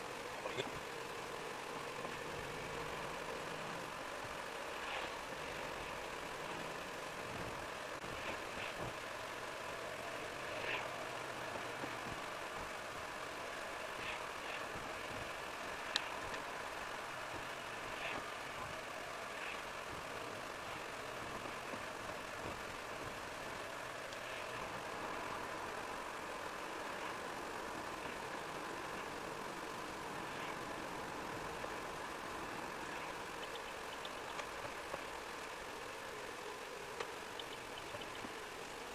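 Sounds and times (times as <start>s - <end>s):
car engine and tyre noise: 0.0s - 38.9s.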